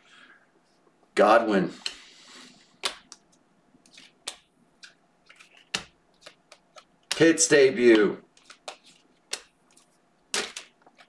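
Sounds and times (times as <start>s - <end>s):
cards sliding against cards: 1.7s - 3.2s, 3.8s - 7.2s, 7.9s - 11.0s
cards clicking: 2.8s - 11.0s.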